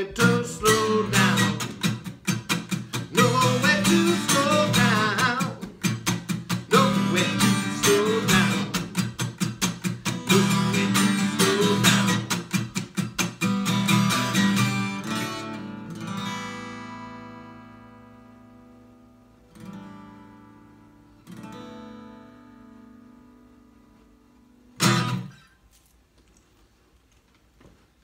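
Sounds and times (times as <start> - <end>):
acoustic guitar strumming: 0.0 - 25.7.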